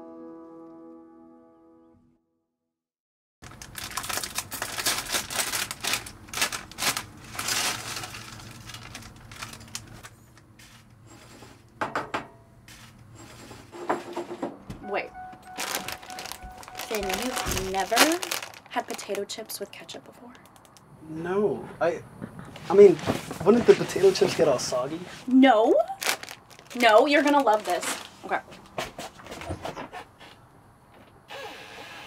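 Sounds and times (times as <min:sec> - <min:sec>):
plastic chip bag crinkling: 0:03.4 - 0:10.2, 0:15.5 - 0:19.7, 0:25.9 - 0:28.3
person saying okay: 0:14.8 - 0:18.2.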